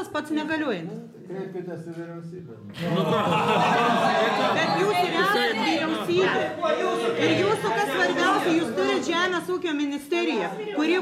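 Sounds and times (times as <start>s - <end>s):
people talking at once: 2.5s - 11.0s.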